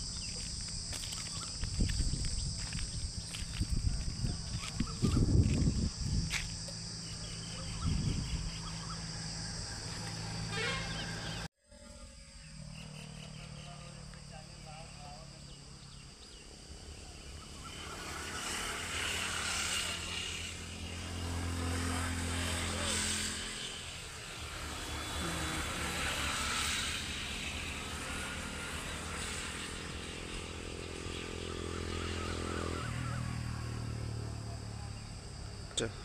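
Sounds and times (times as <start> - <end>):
vehicles passing by: 0.0 - 11.5, 12.9 - 36.0.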